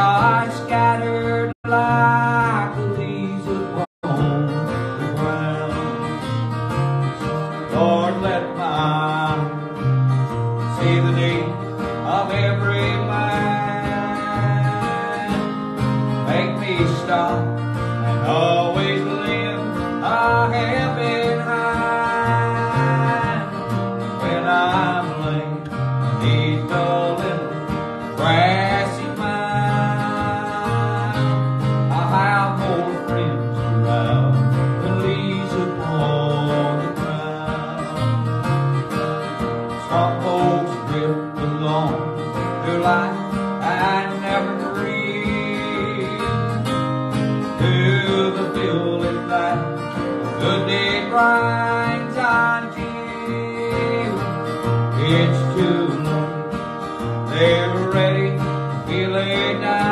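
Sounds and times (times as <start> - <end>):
acoustic guitars playing: 0.0 - 59.9
man singing: 0.0 - 59.9.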